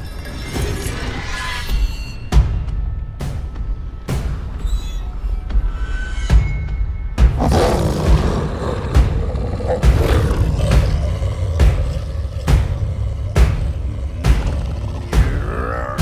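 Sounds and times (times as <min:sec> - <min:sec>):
slow pounding beat: 0:06.8 - 0:16.0
deep wolf growl: 0:07.4 - 0:16.0.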